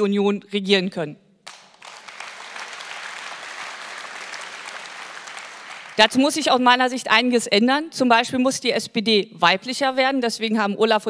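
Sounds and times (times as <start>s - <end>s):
large audience applauding: 1.5s - 6.5s.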